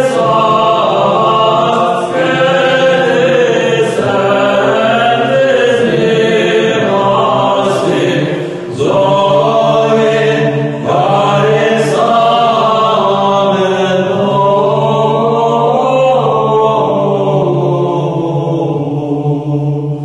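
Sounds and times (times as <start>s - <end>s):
voices chanting slow melody: 0.0s - 20.0s.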